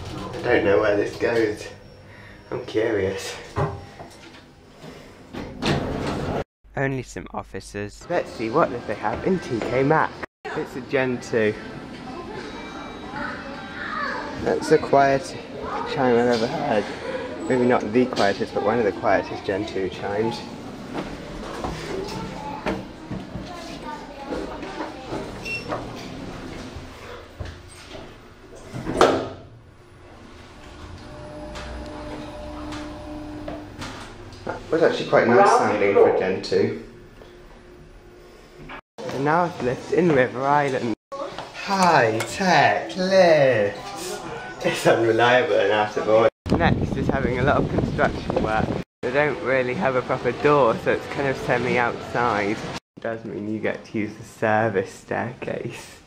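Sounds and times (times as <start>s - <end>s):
lift doors sliding open: 25.0s - 34.7s.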